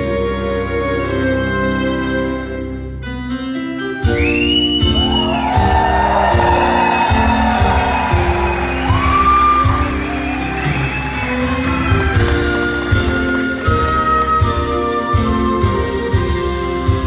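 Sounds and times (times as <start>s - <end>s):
orchestra playing slowly: 0.0s - 17.0s
person whistling: 4.0s - 12.3s
audience cheering: 4.2s - 14.6s.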